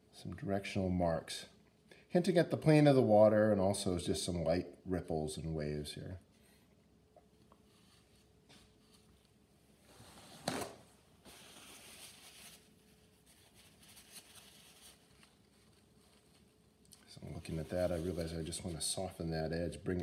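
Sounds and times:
brush strokes on paper: 0:11.2 - 0:19.7.

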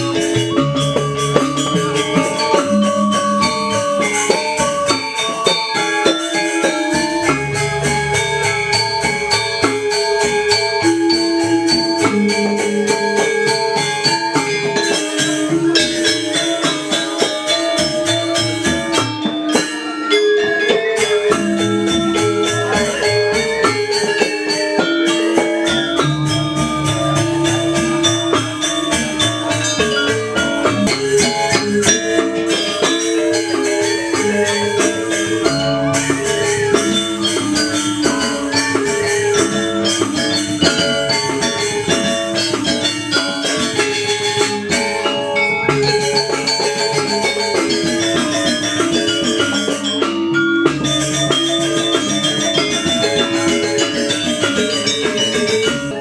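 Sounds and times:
gamelan music: 0:00.0 - 0:56.0
metallophones ringing strokes: 0:00.0 - 0:56.0
percussion: 0:00.0 - 0:56.0.

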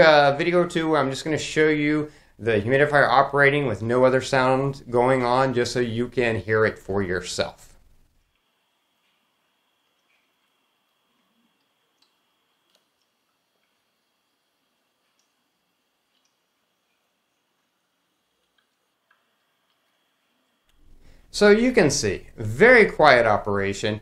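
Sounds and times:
faint water ticks: 0:08.2 - 0:21.2.

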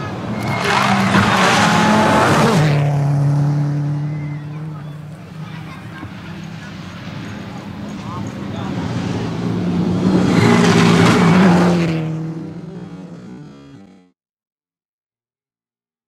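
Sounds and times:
tyres rushing on dirt: 0:00.0 - 0:14.0
rally car engine at high revs: 0:00.0 - 0:14.1.

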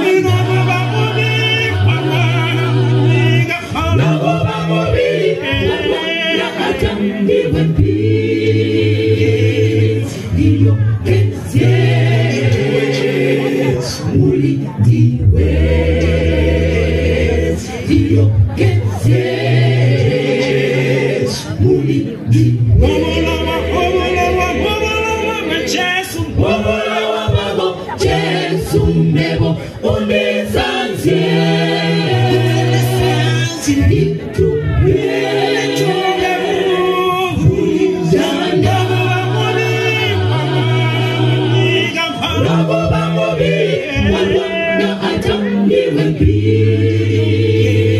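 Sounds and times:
choir singing a cappella: 0:00.0 - 0:47.9
man singing lead: 0:35.8 - 0:46.3.

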